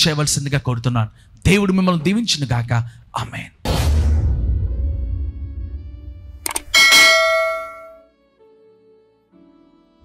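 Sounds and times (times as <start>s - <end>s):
bright bell ding: 6.5s - 8.0s.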